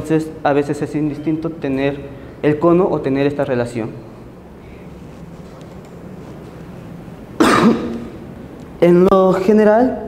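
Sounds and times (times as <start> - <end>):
man coughing loudly: 7.4 - 8.1.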